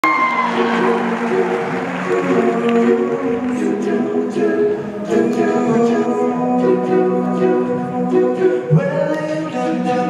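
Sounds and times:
male a cappella group singing: 0.6s - 10.0s.

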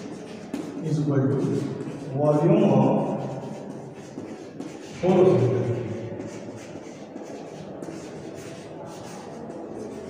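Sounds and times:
chalk scratching on blackboard: 0.0s - 10.0s.

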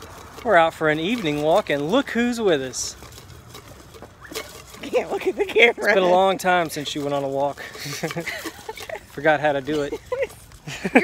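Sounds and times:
faint outdoor background noise: 0.0s - 11.0s
man talking: 0.4s - 3.0s, 5.5s - 8.0s, 9.1s - 10.0s.

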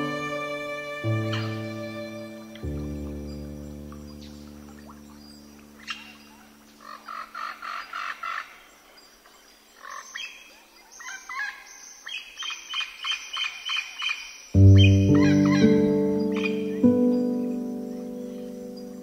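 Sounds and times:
piano chord: 0.0s - 5.8s, 14.6s - 19.0s.

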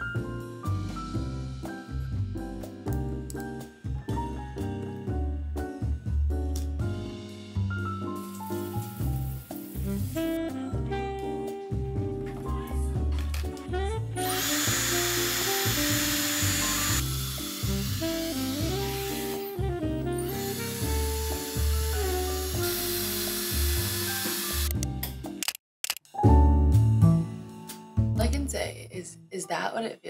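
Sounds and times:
background music with steady beat: 0.0s - 25.4s, 26.2s - 28.6s
hair straightener air hissing: 14.2s - 19.5s, 20.3s - 24.8s.

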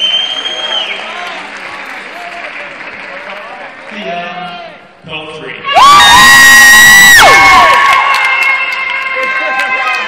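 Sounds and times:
audience applauding: 0.0s - 4.7s, 6.3s - 10.0s
shouts in crowd: 5.6s - 10.0s.

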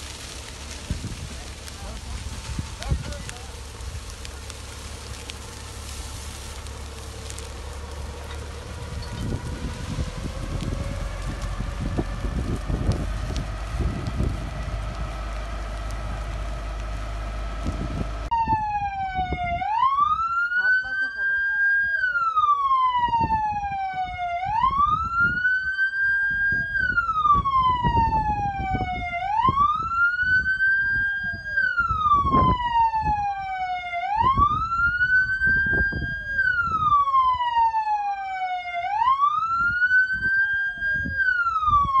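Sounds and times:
emergency siren wailing: 0.0s - 42.0s
fainter second siren: 4.2s - 13.9s, 18.2s - 42.0s.

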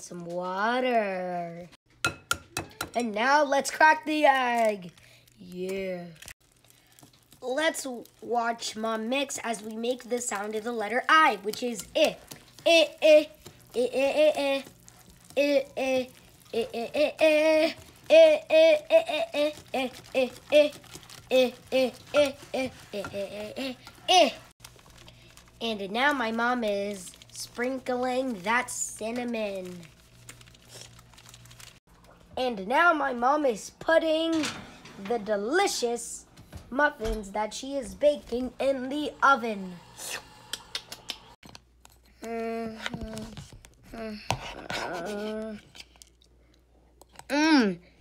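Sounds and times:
whisk stirring batter in glass bowl: 19.4s - 24.1s.

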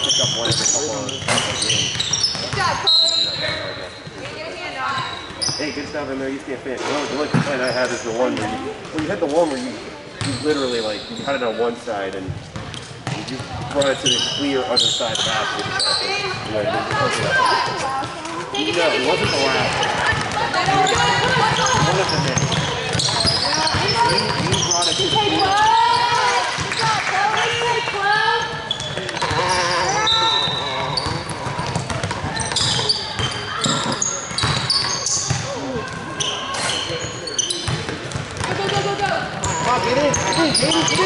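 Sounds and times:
voices calling out: 14.0s - 41.0s
basketball bouncing on hardwood: 37.7s - 39.1s.

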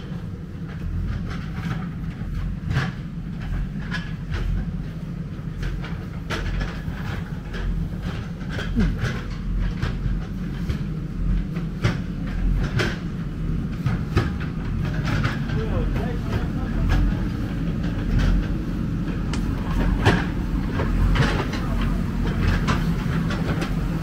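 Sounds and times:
diesel engine rumbling: 0.0s - 24.0s
machine clanks and knocks: 0.0s - 24.0s.

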